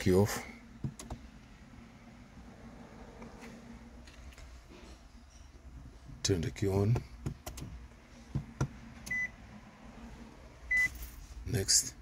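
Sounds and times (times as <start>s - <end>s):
ignition switch clicks: 0.8s - 1.2s.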